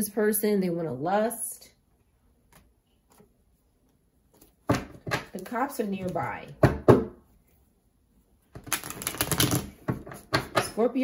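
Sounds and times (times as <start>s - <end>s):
cards being shuffled: 8.6s - 10.2s.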